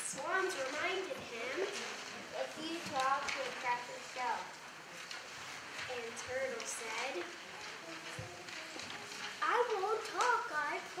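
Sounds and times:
child speaking: 0.0 - 1.8, 2.4 - 4.5, 5.9 - 11.0.

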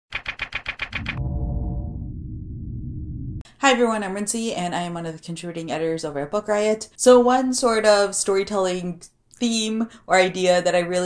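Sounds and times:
sharp typewriter-like clicks: 0.1 - 1.2.

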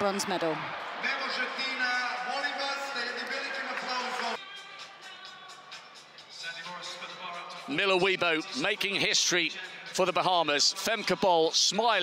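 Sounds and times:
amplified voice or music over loudspeakers: 0.1 - 12.0.

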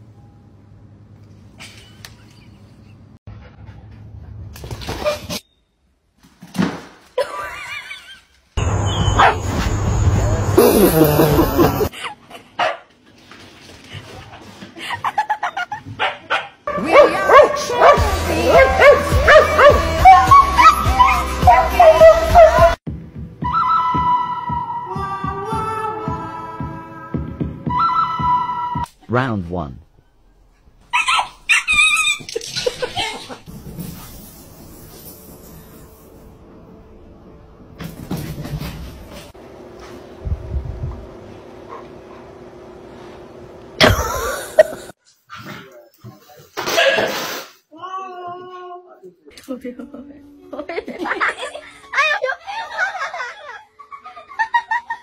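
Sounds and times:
outdoor background noise: 0.0 - 18.5
puppy yipping: 8.9 - 9.4, 30.9 - 32.3
person laughing: 10.6 - 12.6, 32.2 - 33.4, 43.8 - 44.9
small dog yapping: 30.9 - 32.3.

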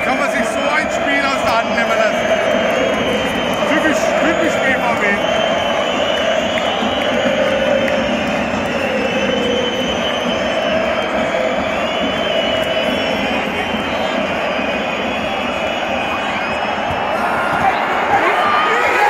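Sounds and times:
stadium crowd singing and shouting: 0.0 - 19.0.

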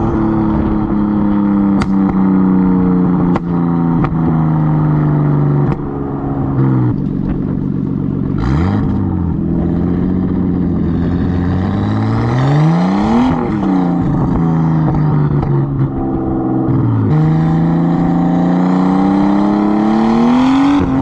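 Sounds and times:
car engine and exhaust driving: 0.0 - 21.0.

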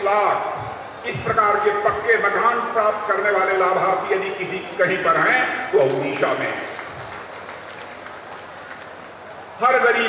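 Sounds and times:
low crowd noise: 0.0 - 10.0
faint clapping: 5.8 - 9.4.

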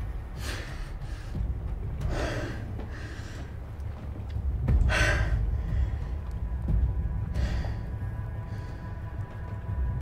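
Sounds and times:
person breathing heavily: 0.2 - 3.7, 4.7 - 9.2.

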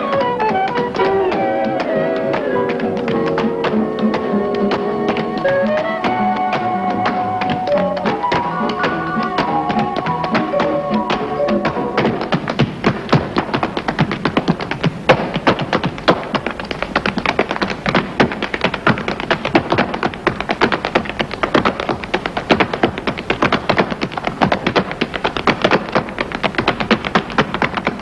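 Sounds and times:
rapid sharp taps and clicks: 0.0 - 28.0.

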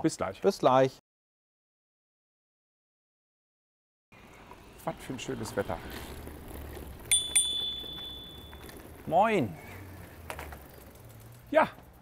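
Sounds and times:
bicycle bell ringing: 7.1 - 8.9.

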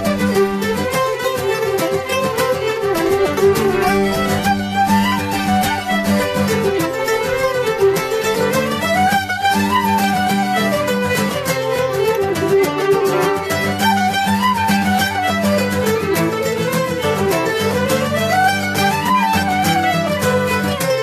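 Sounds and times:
fiddles playing a tune: 0.0 - 21.0
strummed guitar and mandolin: 0.0 - 21.0.

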